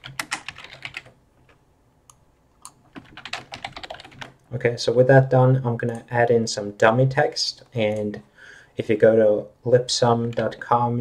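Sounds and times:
computer keyboard typing: 0.0s - 1.2s, 2.6s - 4.4s.

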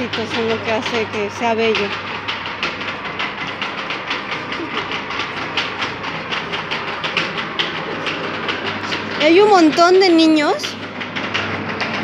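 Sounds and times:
rapid irregular clattering: 0.0s - 12.0s
steady low hum: 0.0s - 12.0s.

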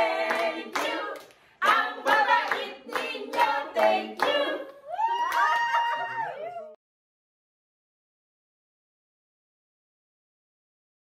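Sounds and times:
people clapping: 0.0s - 6.6s
people cheering and calling out: 4.7s - 6.8s.

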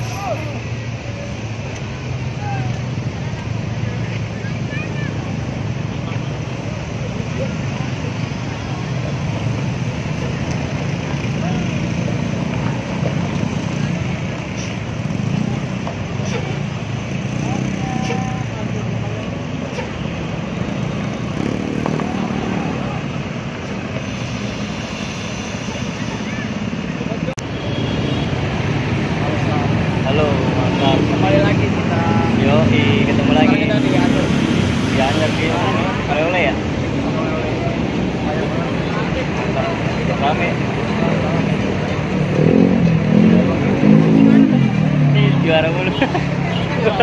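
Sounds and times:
bus diesel engine rumble: 0.0s - 47.0s
road traffic: 0.0s - 47.0s
voices: 0.0s - 47.0s.

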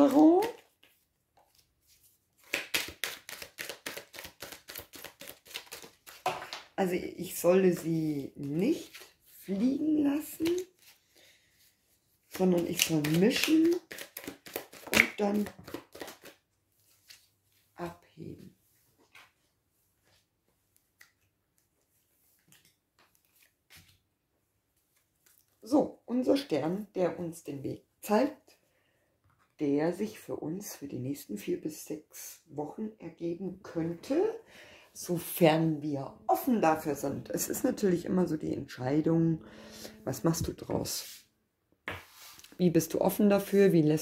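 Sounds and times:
cards being shuffled: 0.0s - 6.7s, 8.4s - 11.1s, 12.2s - 17.3s, 20.8s - 24.0s
cards tapping and sliding on table: 41.9s - 42.4s.

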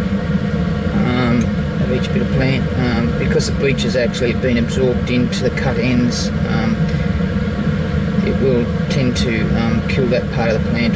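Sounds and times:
blower running steadily: 0.0s - 10.9s.

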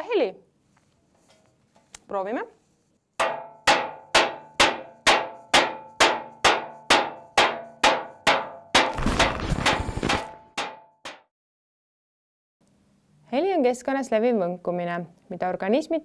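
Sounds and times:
ladle banging metal tray: 3.2s - 11.2s.

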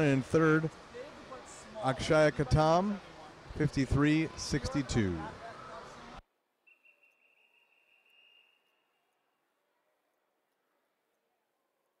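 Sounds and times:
pool deck ambience: 0.0s - 12.0s.

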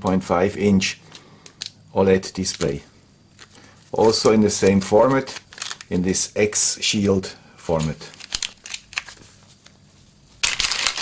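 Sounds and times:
plastic bag crinkling: 2.4s - 6.0s, 7.7s - 9.8s, 10.4s - 11.0s.

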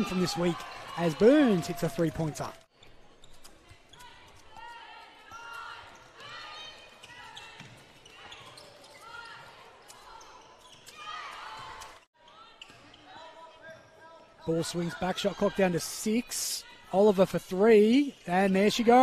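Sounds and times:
players' voices: 0.0s - 2.7s, 3.6s - 19.0s
shoes squeaking on hardwood floor: 5.3s - 13.3s.

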